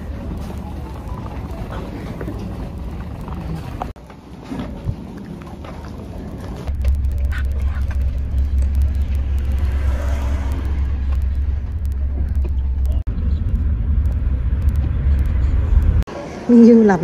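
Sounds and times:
car engine and tyres rumbling: 0.0 - 16.1
faint clicks: 6.7 - 16.0.

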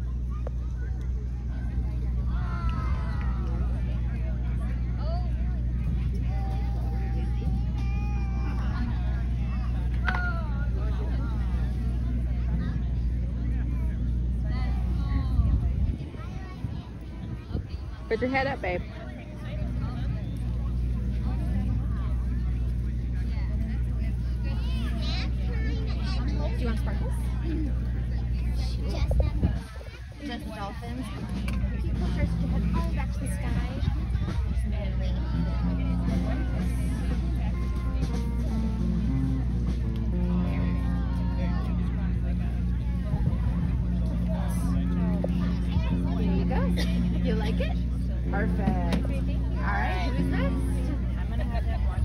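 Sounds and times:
engine rumbling: 0.0 - 52.0
faint voices: 0.0 - 52.0
people chatting: 0.0 - 52.0
steady low drone: 0.0 - 52.0.

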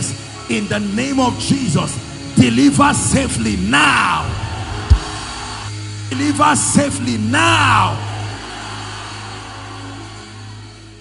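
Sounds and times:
low drone from sound system: 1.3 - 8.4.

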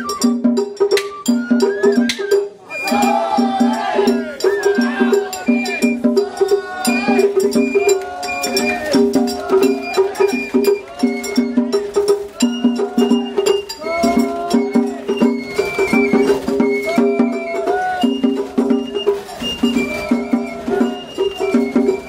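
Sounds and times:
bamboo flute melody: 0.0 - 22.0
taiko drums beating: 0.0 - 22.0.

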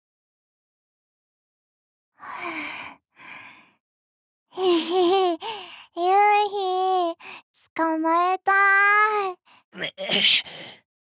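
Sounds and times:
breathy gasp: 10.3 - 10.8.

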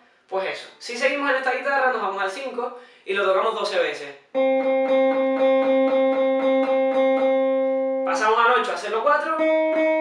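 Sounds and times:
electric guitar picking one note: 4.4 - 8.1, 9.3 - 10.0.

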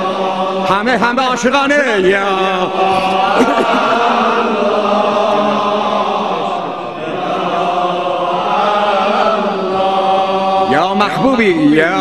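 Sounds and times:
man chanting into microphone: 10.6 - 12.0.

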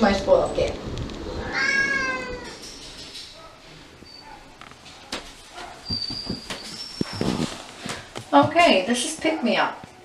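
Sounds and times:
cat meowing: 1.3 - 2.6.

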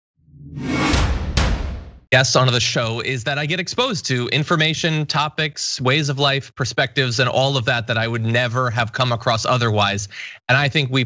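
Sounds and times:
whoosh: 0.2 - 2.1
low boom: 0.3 - 2.1
sharp hits: 0.3 - 2.1.

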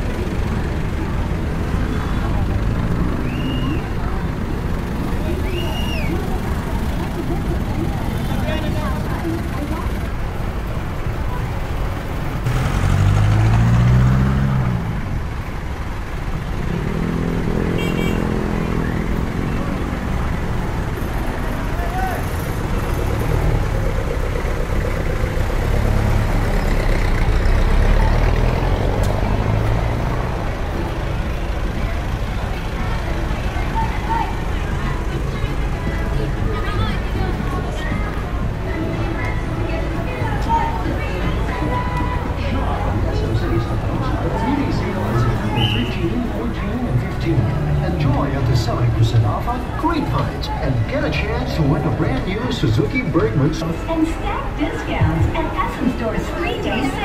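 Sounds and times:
low rumble of road traffic: 0.0 - 57.0
people's voices nearby: 0.0 - 57.0.

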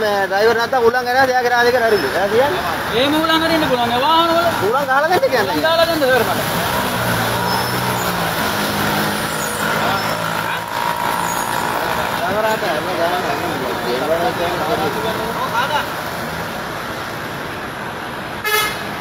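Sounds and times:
voices: 0.0 - 18.1.

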